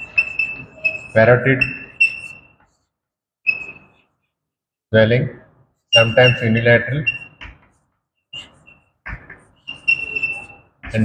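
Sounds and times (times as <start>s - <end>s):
chalk scratching and squeaking: 0.0s - 2.9s, 5.8s - 11.0s.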